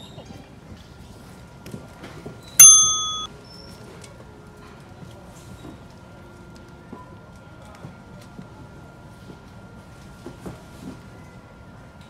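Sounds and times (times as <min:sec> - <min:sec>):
loud bell-like ding: 0:02.6 - 0:03.3.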